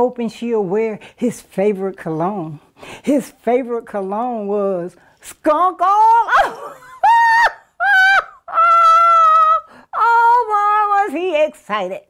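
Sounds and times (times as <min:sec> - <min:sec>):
woman laughing high-pitched: 0:06.3 - 0:09.7.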